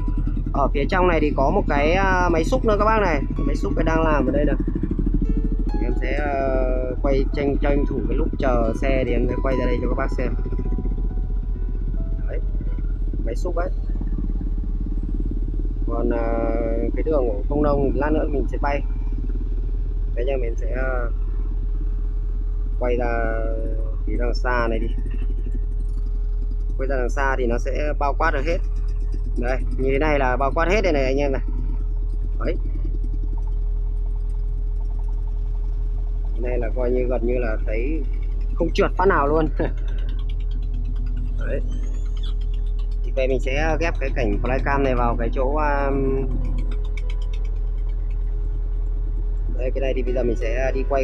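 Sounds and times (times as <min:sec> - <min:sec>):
diesel engine idling: 0:00.0 - 0:51.0
steady higher whine: 0:00.0 - 0:51.0.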